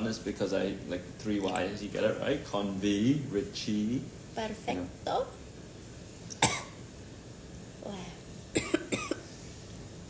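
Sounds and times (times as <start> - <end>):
young woman coughing: 6.4 - 6.8, 8.5 - 9.3.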